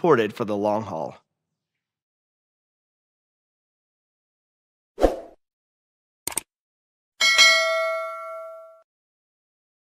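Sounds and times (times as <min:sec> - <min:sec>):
bell ding: 0:07.2 - 0:08.9.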